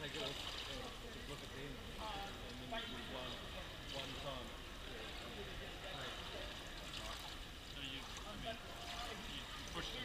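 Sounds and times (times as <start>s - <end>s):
echoing indoor pool hiss: 0.0s - 10.0s.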